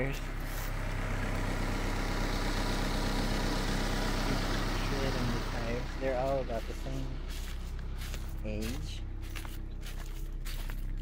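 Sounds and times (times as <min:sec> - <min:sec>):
steady low hum: 0:00.0 - 0:11.0
footsteps on dry leaves: 0:05.2 - 0:11.0.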